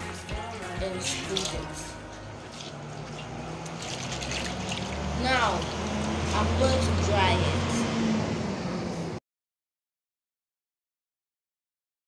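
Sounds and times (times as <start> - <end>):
water dripping and splashing in basin: 1.0 - 6.6.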